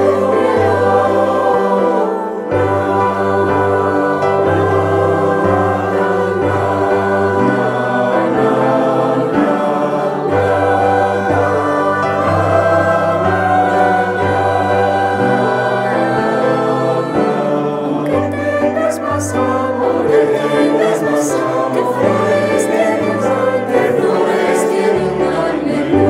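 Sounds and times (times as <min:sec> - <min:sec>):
mixed choir singing chords: 0:00.0 - 0:26.0.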